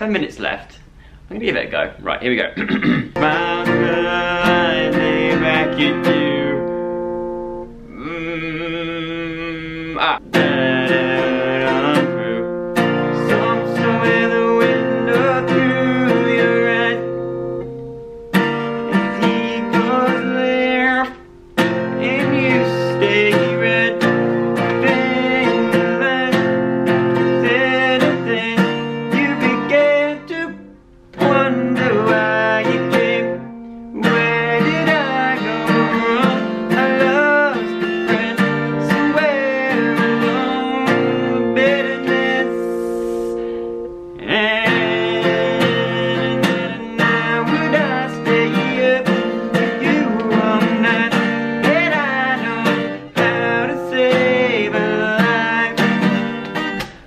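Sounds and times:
acoustic guitar strumming: 2.6s - 57.0s
man singing: 2.8s - 17.4s, 18.8s - 43.6s, 44.2s - 56.8s.

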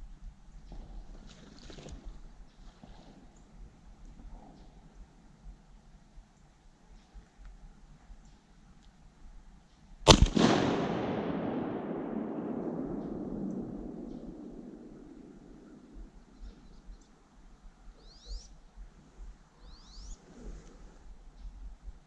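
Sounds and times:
shotgun shot echoing: 10.1s - 16.2s.

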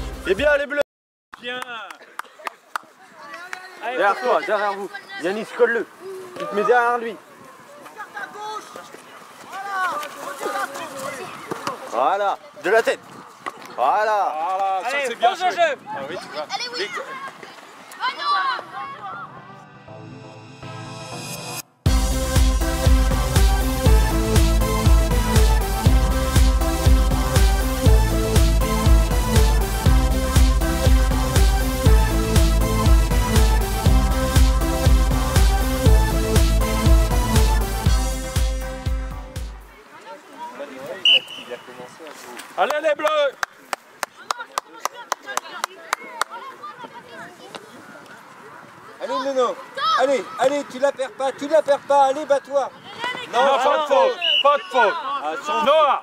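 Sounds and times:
people shouting outdoors: 3.0s - 13.0s, 13.7s - 19.9s, 44.2s - 56.0s.

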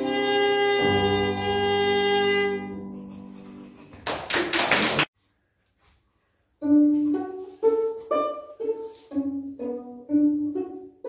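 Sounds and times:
violin and piano chord: 0.0s - 3.4s
audience applause: 3.9s - 5.1s.

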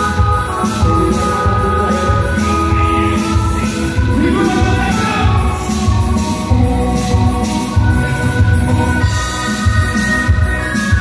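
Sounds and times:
man singing into a microphone: 0.0s - 6.1s
electronic keyboard chords: 0.0s - 11.0s.

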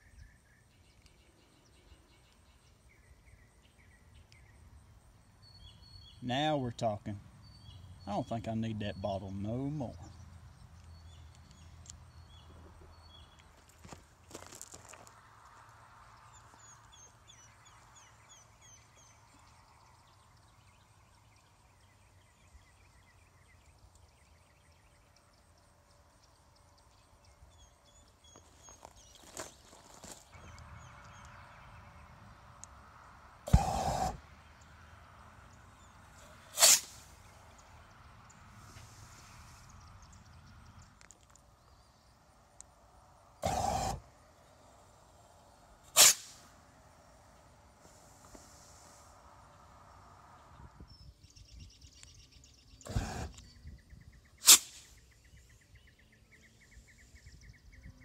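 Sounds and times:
exhaust flamethrower blasts: 33.3s - 34.4s, 36.1s - 37.4s, 43.3s - 44.2s, 45.8s - 50.2s, 52.8s - 53.4s
bottle rocket bang: 33.4s - 34.2s, 36.5s - 37.1s, 45.9s - 46.4s.

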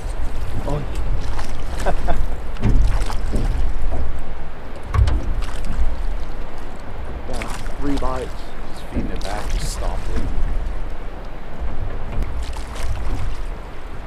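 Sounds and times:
boat and oars knocking: 0.0s - 14.0s
water and wind rumble: 0.0s - 14.0s.

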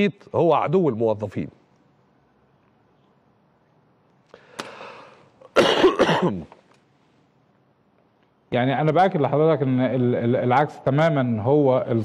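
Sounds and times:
man clearing his throat: 5.5s - 6.5s
man coughing: 5.5s - 6.5s.

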